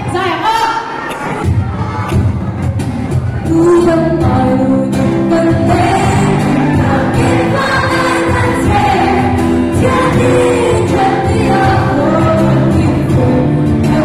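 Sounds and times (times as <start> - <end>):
drums: 0.9 - 14.0.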